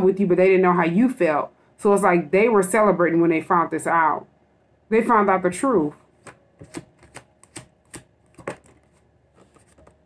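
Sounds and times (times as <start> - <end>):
cards being shuffled: 6.2 - 10.0.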